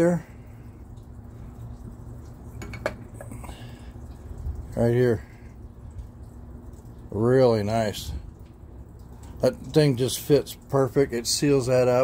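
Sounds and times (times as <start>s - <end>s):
low background rumble: 0.0s - 11.6s.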